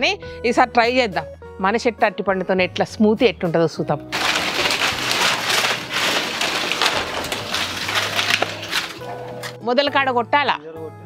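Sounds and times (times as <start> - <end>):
dry leaves rustling and crackling: 4.1 - 9.6.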